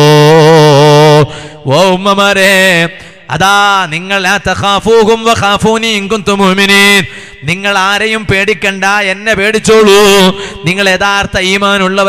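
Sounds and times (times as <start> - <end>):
man chanting: 0.0 - 12.0.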